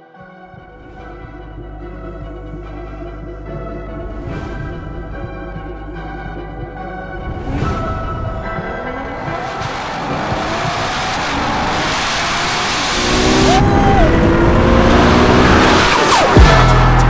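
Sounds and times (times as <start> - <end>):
background music: 0.0 - 17.0
car engine revving and accelerating: 0.8 - 17.0.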